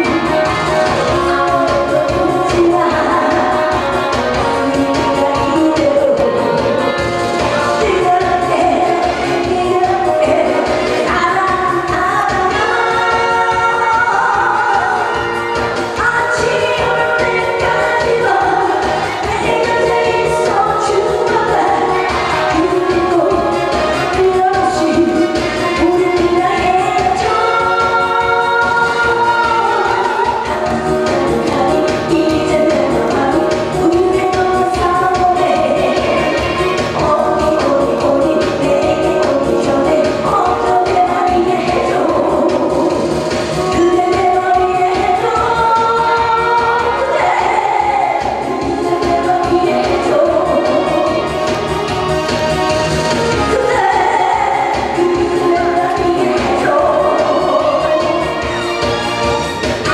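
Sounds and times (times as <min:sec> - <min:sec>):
musical accompaniment with beat: 0:00.0 - 0:59.9
woman singing into microphone: 0:00.0 - 0:59.9.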